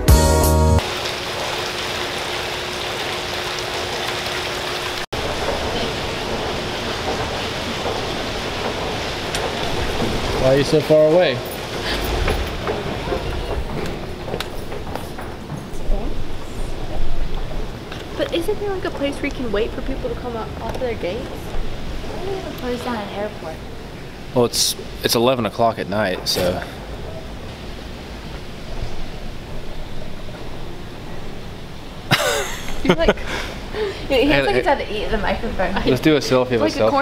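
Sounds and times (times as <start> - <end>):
escalator rumble: 3.4 - 37.0.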